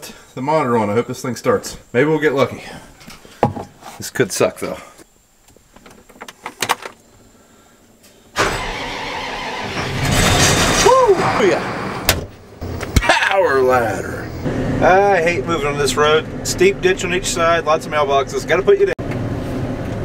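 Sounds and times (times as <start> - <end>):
diesel engine starting and running: 8.4 - 20.0.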